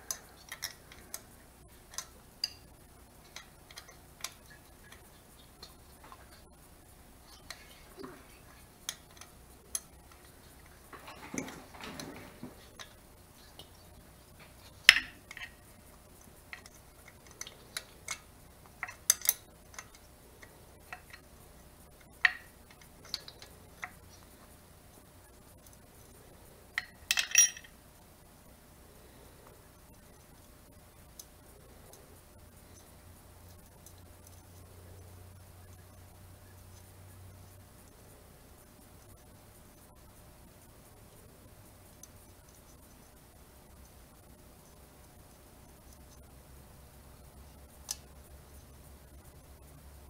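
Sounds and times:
wrench and bolts clinking: 26.8 - 27.8.

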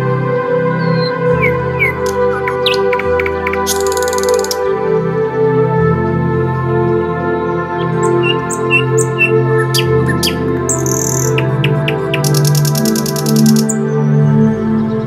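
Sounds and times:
calm music with held notes: 0.0 - 15.0
bird chirps: 0.8 - 4.6, 7.8 - 14.0
buzzy bird trill: 0.9 - 4.7, 7.9 - 13.8.

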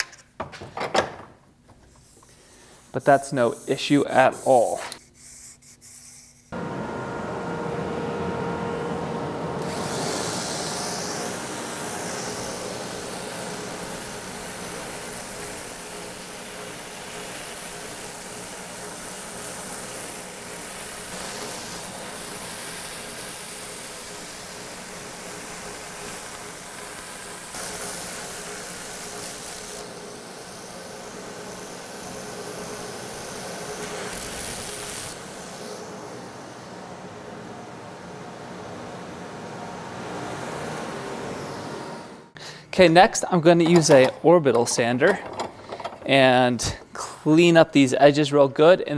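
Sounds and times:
belt sander grinding: 6.5 - 37.1, 43.6 - 47.0.

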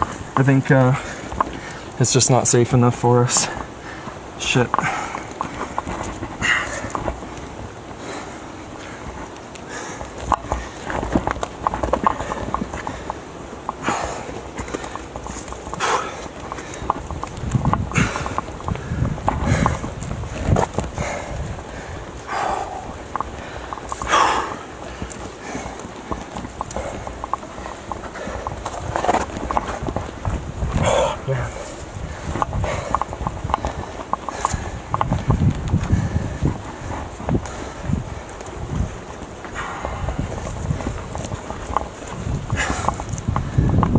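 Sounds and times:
hands and shoes scuffing rock: 3.4 - 43.9
person breathing: 3.5 - 4.2, 4.8 - 7.1, 8.0 - 11.0, 13.8 - 16.9, 17.9 - 29.6, 30.8 - 38.4.

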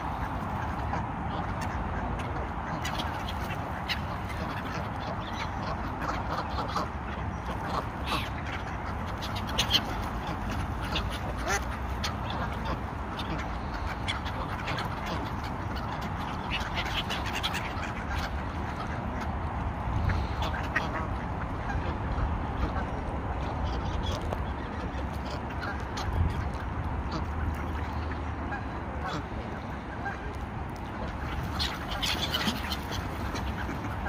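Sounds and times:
ducks quacking: 0.0 - 34.0.

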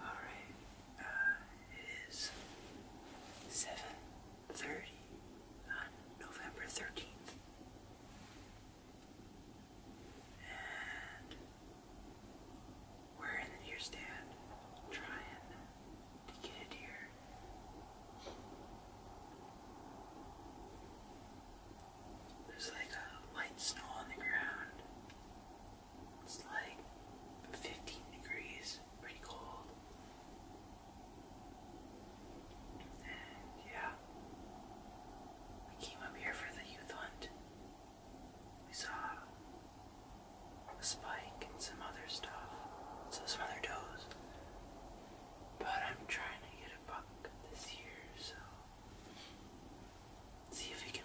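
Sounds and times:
person whispering: 0.0 - 7.4, 10.2 - 11.5, 13.1 - 17.5, 22.3 - 25.0, 26.2 - 30.2, 32.7 - 34.1, 35.6 - 37.4, 38.7 - 39.5, 40.6 - 48.7, 50.4 - 51.0
steady low background hiss: 0.0 - 51.0.

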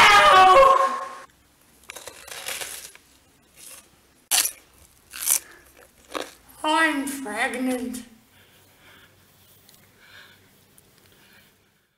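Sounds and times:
chewing crisp lettuce: 1.8 - 6.5.

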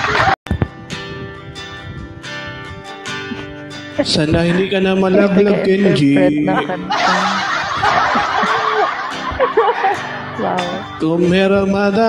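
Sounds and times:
loud breathy laughter: 6.9 - 10.4.

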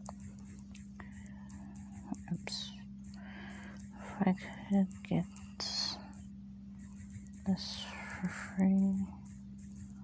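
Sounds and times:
steady low hum: 0.0 - 10.0
faint whispered voice: 2.1 - 2.9, 4.1 - 6.2, 7.5 - 9.2.

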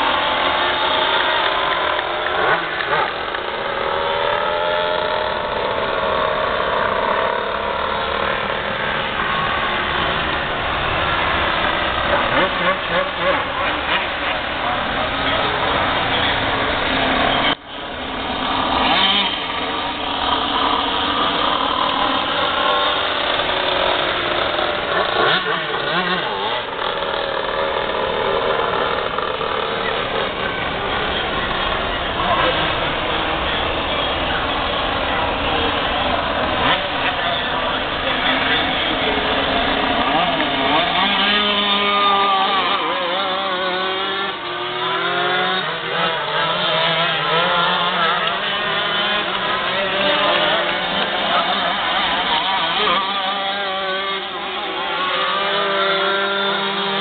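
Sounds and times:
kart engines racing: 0.0 - 57.0.

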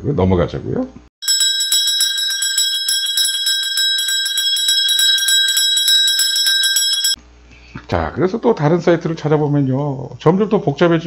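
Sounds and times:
bell ringing in rapid trill: 1.2 - 7.2.

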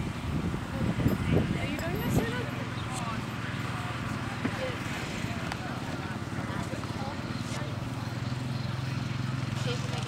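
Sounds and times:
faint voices: 0.6 - 10.0.

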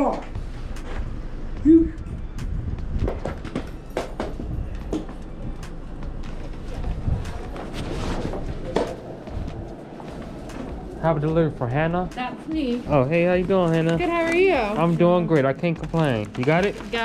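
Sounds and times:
footsteps: 0.0 - 17.0.

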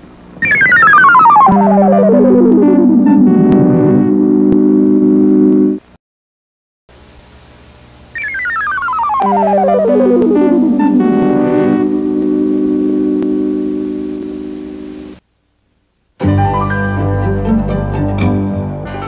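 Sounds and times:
sustained synthesizer chords: 0.4 - 5.8, 8.9 - 14.8
synthesizer held chord: 0.4 - 5.8, 8.8 - 15.1
synthesizer tone gliding downward: 0.4 - 5.8, 8.2 - 14.8.

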